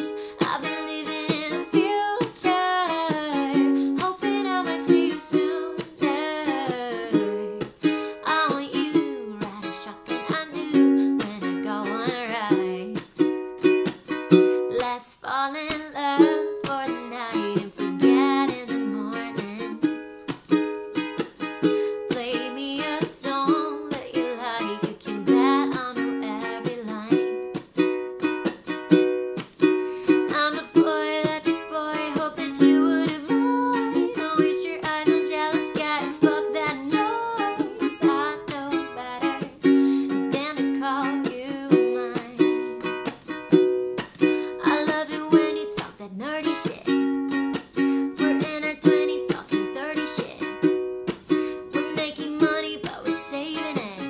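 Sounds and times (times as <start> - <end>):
woman singing: 0.0 - 13.2, 14.3 - 20.1, 21.4 - 27.6, 30.0 - 43.2, 44.2 - 50.8, 51.5 - 54.0
ukulele strummed in chords: 0.0 - 54.0.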